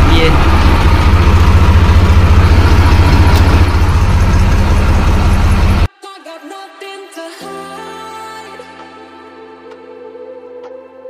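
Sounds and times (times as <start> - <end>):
diesel tractor engine idling: 0.0 - 5.9.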